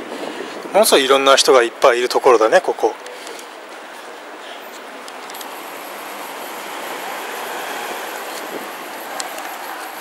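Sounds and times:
passing vehicles rushing: 3.0s - 10.0s.

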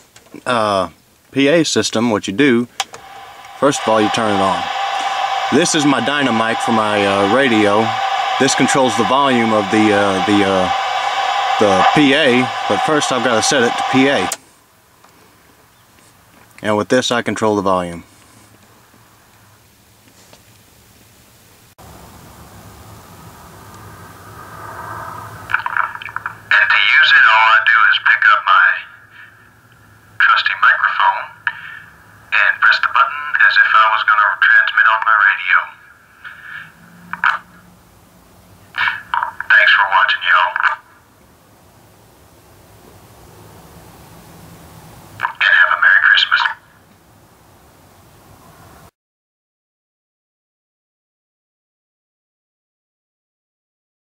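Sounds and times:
faint hum: 0.0s - 48.9s
tinny voice through bullhorn: 3.6s - 4.7s, 5.5s - 10.8s, 11.6s - 14.4s, 38.8s - 40.8s, 45.2s - 46.6s.

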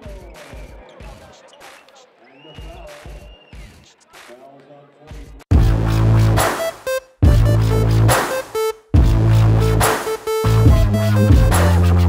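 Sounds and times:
shoe squeak: 0.0s - 4.1s.

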